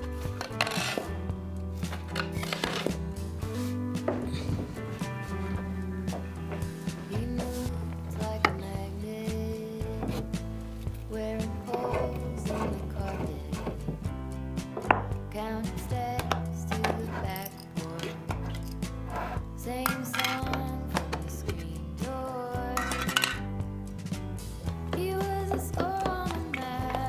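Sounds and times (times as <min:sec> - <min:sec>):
background music: 0:00.0 - 0:27.0
metal tin clinks and clicks: 0:19.8 - 0:20.6, 0:22.8 - 0:23.5.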